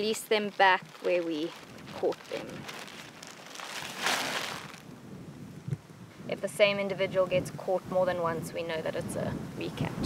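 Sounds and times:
dry grass and plastic bag rustling: 0:00.0 - 0:05.7.

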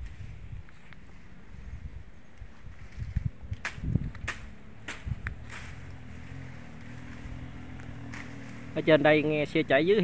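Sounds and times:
distant engine humming: 0:03.6 - 0:10.0.

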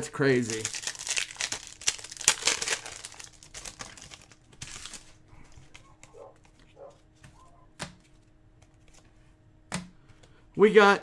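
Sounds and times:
wrapper crinkling and tearing: 0:00.0 - 0:06.2
cards rustling: 0:00.0 - 0:09.4.

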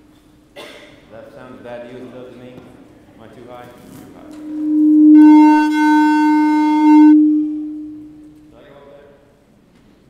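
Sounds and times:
steady electronic tone: 0:04.2 - 0:08.4.

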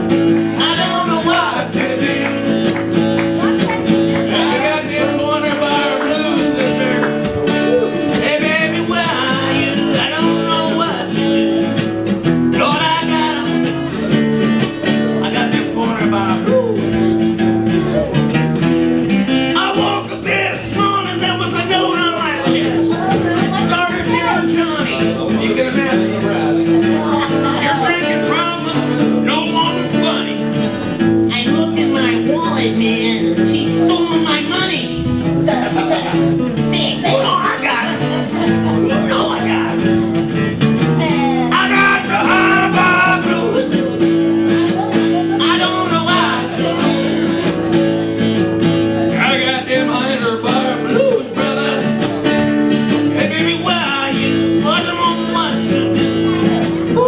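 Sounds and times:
acoustic guitars strumming: 0:00.0 - 0:57.0.

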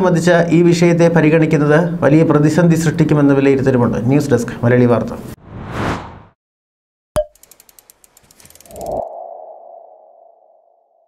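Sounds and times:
whoosh: 0:05.4 - 0:06.4
quick ticks: 0:07.3 - 0:09.0.

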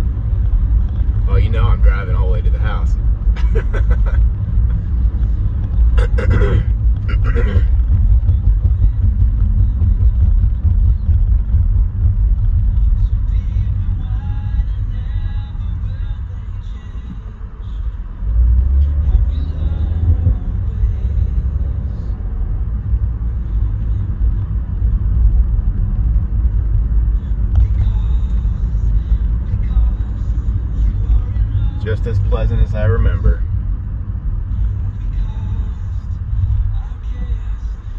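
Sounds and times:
car road and engine rumble: 0:00.0 - 0:37.9.

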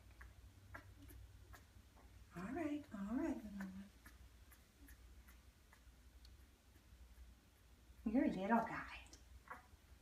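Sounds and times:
faint regular ticking: 0:00.0 - 0:10.0.

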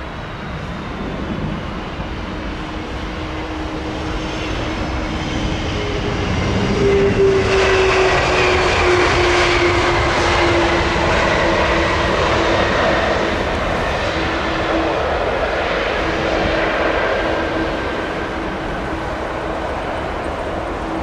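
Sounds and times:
jet engines roaring and whining: 0:00.0 - 0:21.0.

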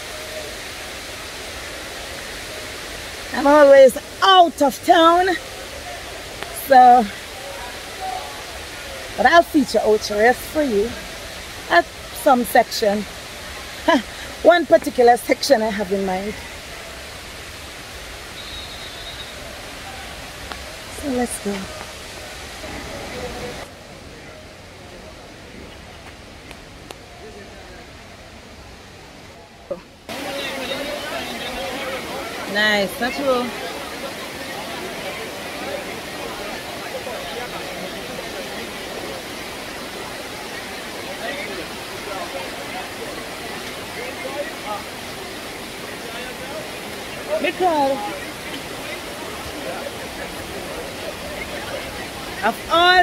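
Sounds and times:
faint voices: 0:00.0 - 0:53.0
waterfall rushing: 0:00.0 - 0:53.0.

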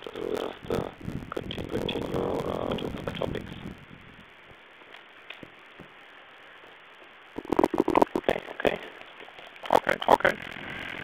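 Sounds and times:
phone line hiss: 0:00.0 - 0:04.3, 0:06.4 - 0:09.0, 0:09.7 - 0:11.0
muffled choppy phone bursts: 0:07.4 - 0:08.4.

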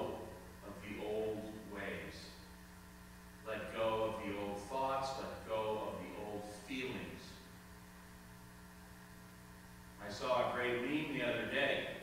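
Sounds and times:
man speaking: 0:00.0 - 0:02.4, 0:03.4 - 0:07.5, 0:10.0 - 0:12.0
electrical mains hum: 0:00.0 - 0:12.0.

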